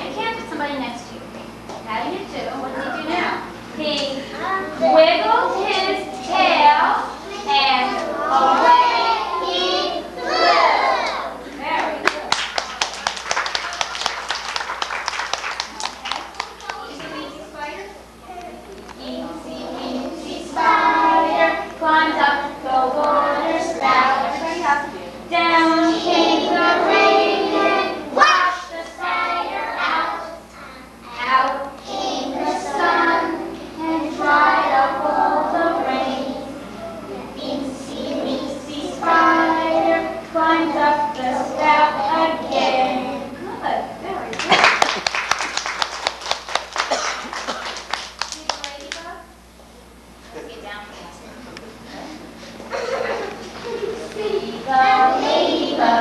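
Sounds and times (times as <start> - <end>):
young children singing: 4.2 - 11.5, 18.9 - 43.4, 52.7 - 56.0
hand clapping: 11.8 - 17.1, 44.3 - 49.1.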